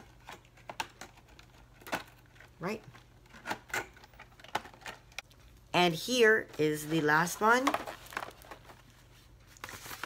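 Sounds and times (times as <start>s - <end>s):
packaging rustling: 7.5s - 10.0s.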